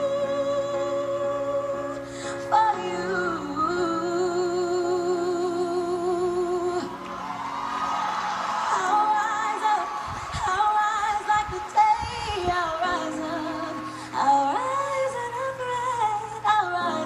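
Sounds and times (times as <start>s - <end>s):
woman singing pop ballad: 0.0s - 7.2s, 8.7s - 17.0s
backing music through tv speaker: 0.0s - 17.0s.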